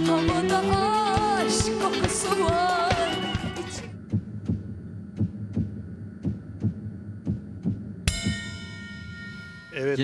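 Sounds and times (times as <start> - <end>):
song with singing: 0.0 - 3.9
heartbeat-like suspense pulse: 3.4 - 8.9
low hum: 3.4 - 10.0.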